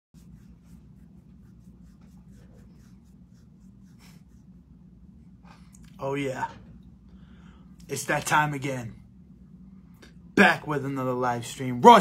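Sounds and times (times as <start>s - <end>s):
faint room hum: 0.2s - 12.0s.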